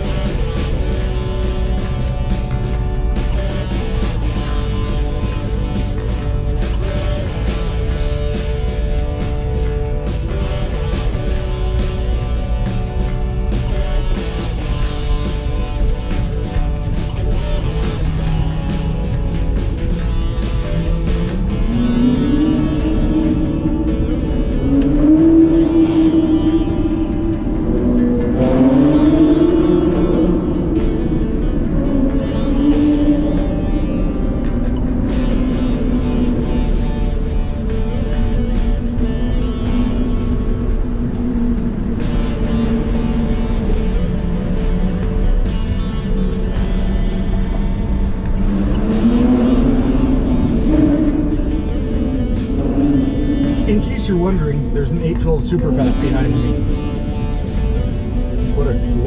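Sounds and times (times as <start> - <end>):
background music: 0.0 - 59.0
car engine revving in tunnel: 0.0 - 59.0.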